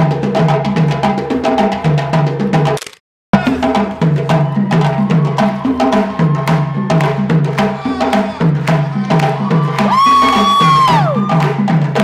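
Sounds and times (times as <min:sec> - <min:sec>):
drum circle playing: 0:00.0 - 0:12.0.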